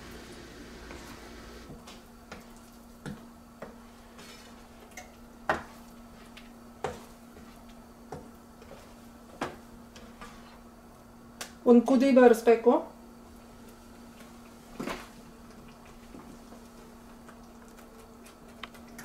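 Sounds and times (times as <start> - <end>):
spoon stirring sauce in a pan: 2.4 - 10.6.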